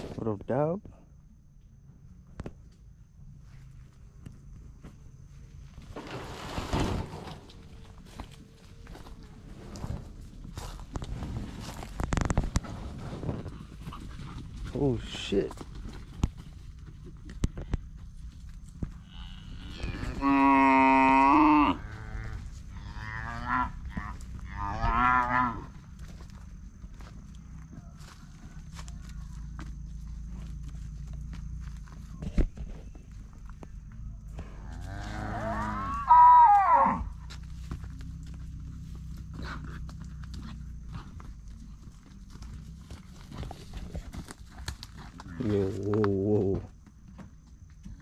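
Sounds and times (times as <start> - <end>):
cattle mooing: 19.0 - 25.7, 34.7 - 37.1.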